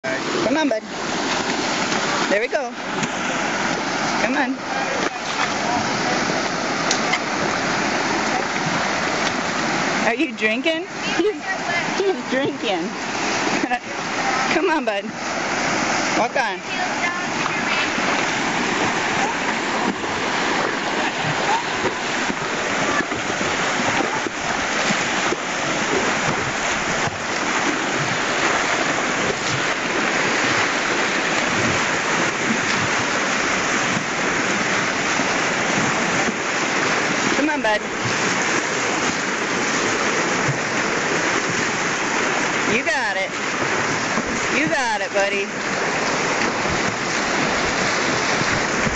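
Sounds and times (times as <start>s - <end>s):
creek water rushing: 0.0s - 48.9s.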